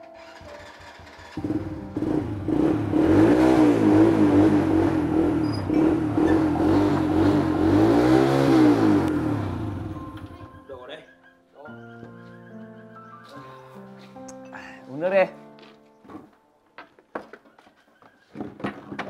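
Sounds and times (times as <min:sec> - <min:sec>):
small motorcycle engine revving: 0:00.2 - 0:10.2.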